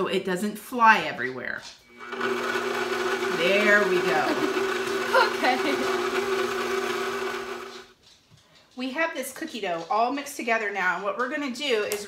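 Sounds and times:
stand mixer motor hum: 1.9 - 7.9.

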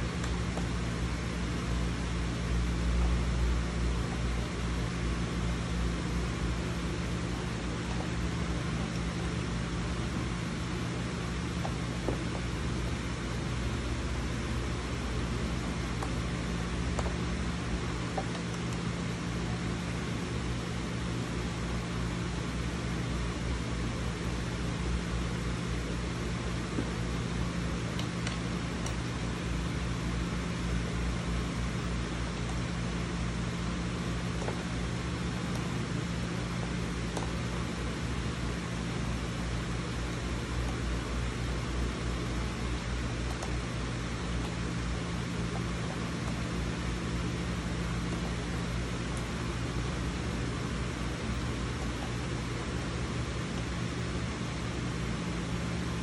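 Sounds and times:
low mechanical hum: 0.0 - 56.0.

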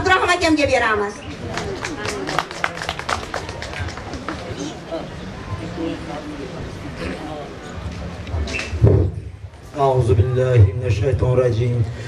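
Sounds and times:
low indistinct voices: 0.0 - 12.0.

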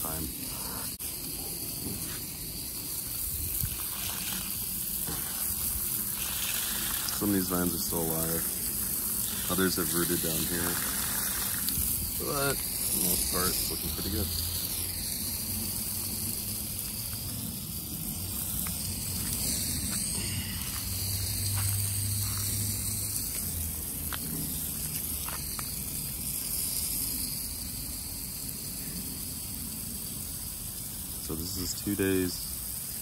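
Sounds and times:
water spray on leaf litter: 0.0 - 33.0.

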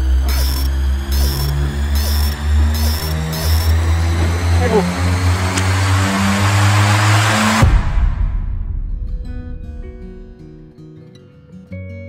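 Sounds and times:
rush of noise: 0.0 - 10.5
low sustained bass notes: 0.0 - 10.8.

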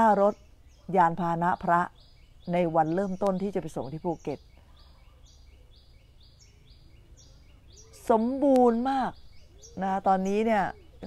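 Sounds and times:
high bird or insect chirp: 0.0 - 11.0.

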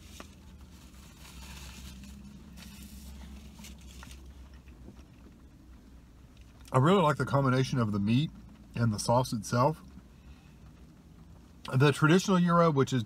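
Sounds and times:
soft rustling: 0.0 - 6.6.

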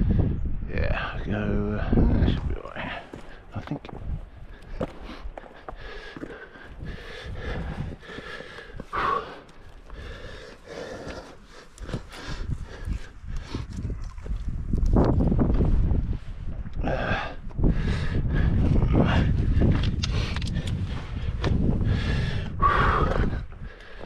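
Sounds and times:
person breathing heavily: 2.7 - 14.0, 16.0 - 24.0.

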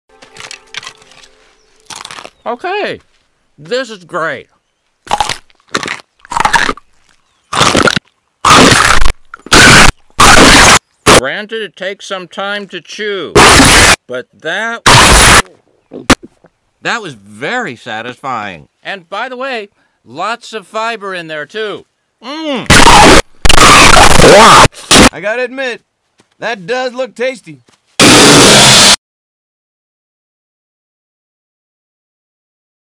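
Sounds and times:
cartoon bark crunching: 1.8 - 2.4, 5.0 - 11.2, 13.4 - 14.0, 14.9 - 16.2, 22.7 - 25.2
harsh distorted noise: 8.4 - 11.2, 13.4 - 14.0, 14.9 - 15.4, 22.7 - 25.2, 28.0 - 29.0.

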